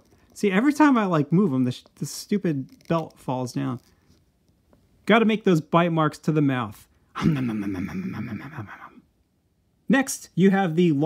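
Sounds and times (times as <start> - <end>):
man making whinny-like vocal noise: 7.2 - 9.0.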